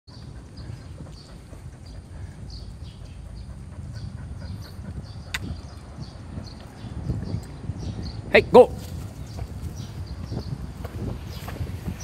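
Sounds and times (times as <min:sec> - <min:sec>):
dog panting: 0:00.1 - 0:06.8.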